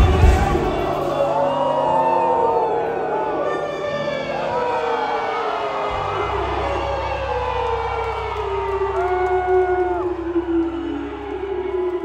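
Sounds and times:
live band music: 0:00.0 - 0:01.5
crowd cheering and whooping: 0:00.0 - 0:12.0.

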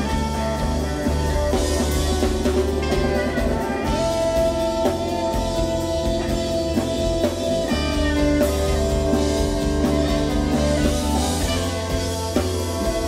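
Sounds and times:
drum kit: 0:00.0 - 0:13.0
electric guitar: 0:00.0 - 0:13.0
jazz band playing: 0:00.0 - 0:13.0.

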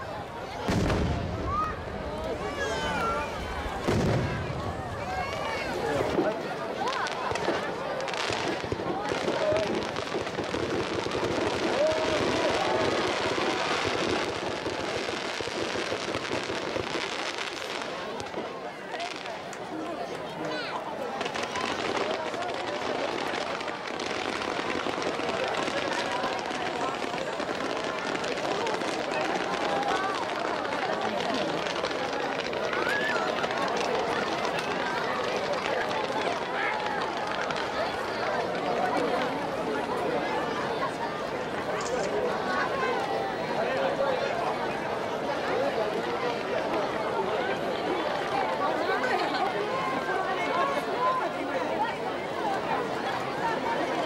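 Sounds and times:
fireworks crackling and popping: 0:00.0 - 0:52.0
crowd chattering: 0:00.0 - 0:54.0.

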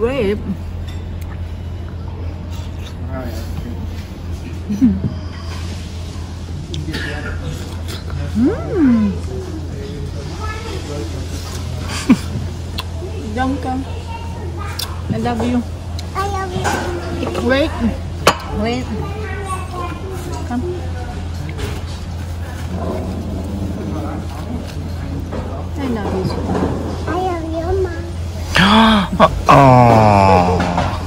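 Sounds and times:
faint voices: 0:28.1 - 0:31.0
drawn-out vocal exclamation: 0:28.6 - 0:31.0.

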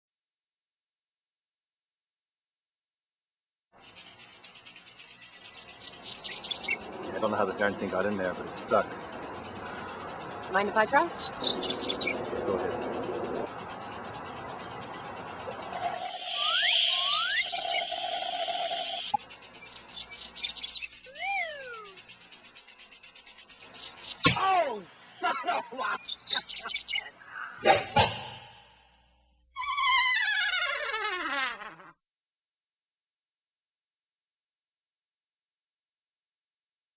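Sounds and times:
crickets chirping: 0:03.8 - 0:27.4.

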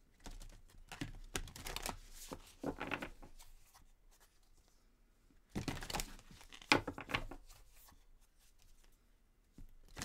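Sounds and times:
cards being shuffled: 0:00.2 - 0:04.3.

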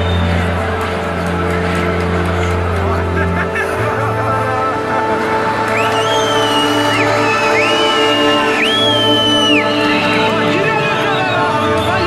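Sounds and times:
drone background music: 0:00.0 - 0:12.0
voices: 0:00.0 - 0:12.0.

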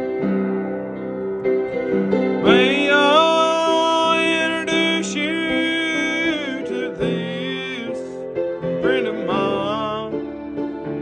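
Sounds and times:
piano accompaniment: 0:00.0 - 0:11.0
man singing gospel: 0:02.4 - 0:10.3.

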